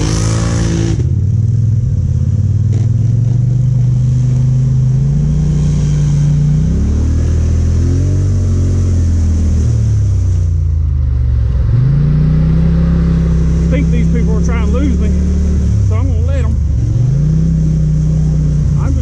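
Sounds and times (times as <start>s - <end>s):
quad bike engine revving: 0.0s - 10.4s, 11.6s - 19.0s.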